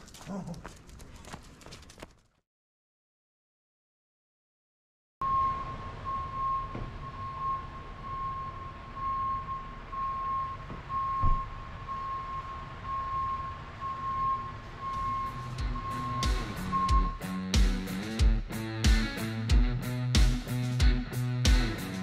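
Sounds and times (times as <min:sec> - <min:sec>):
reversing alarm beeping: 0:05.2 - 0:17.4
engine rumble: 0:05.2 - 0:22.0
thump: 0:10.7 - 0:11.4.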